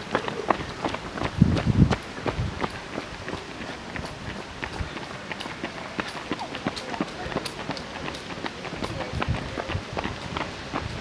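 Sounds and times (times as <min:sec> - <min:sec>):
running footsteps on asphalt: 0:00.0 - 0:11.0
voices in background: 0:02.6 - 0:11.0.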